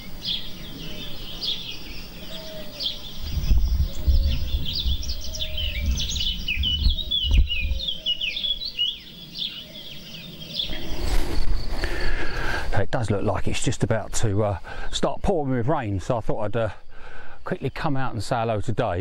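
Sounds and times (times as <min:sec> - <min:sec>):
songbirds chirping and trilling: 0:00.0 - 0:19.0.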